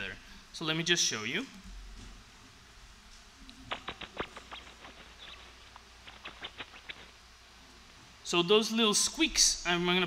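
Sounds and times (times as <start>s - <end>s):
rat squeaks: 3.7s - 7.1s.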